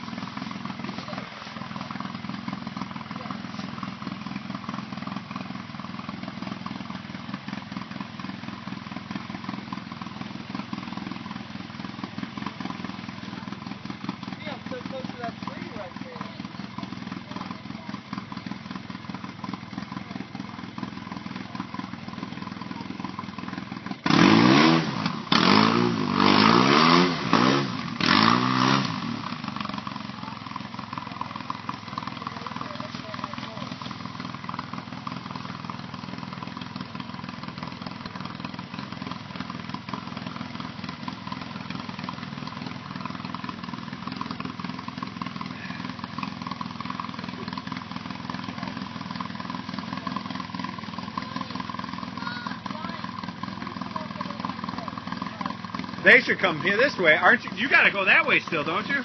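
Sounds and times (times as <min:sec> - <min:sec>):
utility vehicle engine idling: 0:00.0 - 0:59.0.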